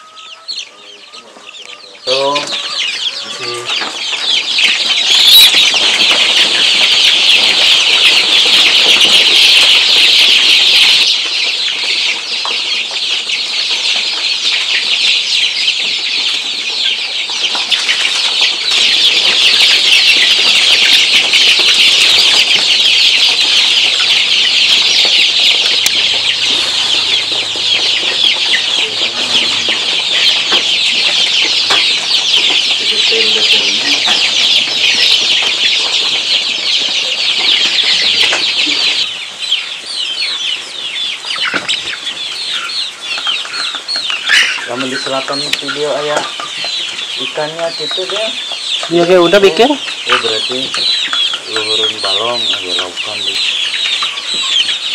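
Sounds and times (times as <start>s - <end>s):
chicks peeping: 0.0s - 54.9s.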